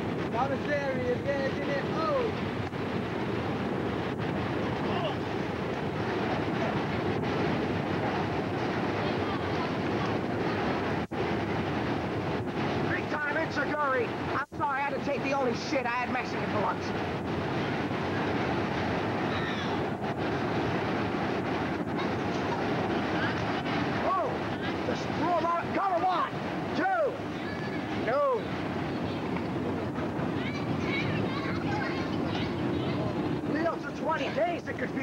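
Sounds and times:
outdoor background noise: 0.0 - 35.0
voices: 0.0 - 35.0.

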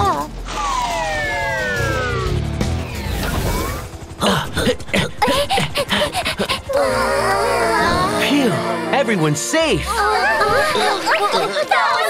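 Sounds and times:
cartoon background music: 0.0 - 12.0
low rumble: 0.2 - 8.9.

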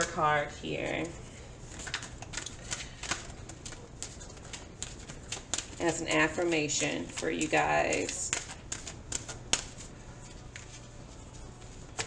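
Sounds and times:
cards being shuffled: 1.0 - 12.0.

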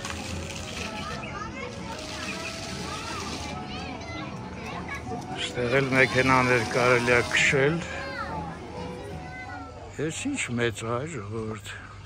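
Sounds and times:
children and adults talking: 0.0 - 12.0
faint music: 0.0 - 12.0.

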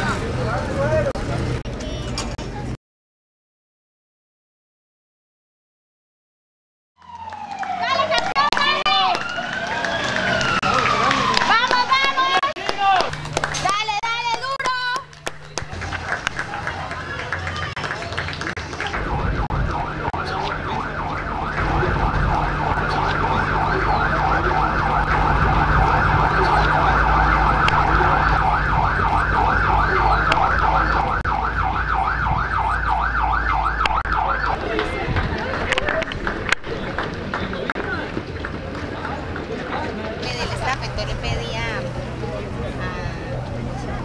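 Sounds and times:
siren yelping: 7.0 - 16.6, 18.9 - 34.6
low engine rumble: 7.0 - 44.0.

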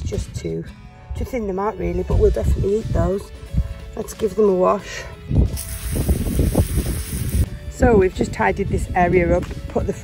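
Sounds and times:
hose spraying water: 5.5 - 7.5.

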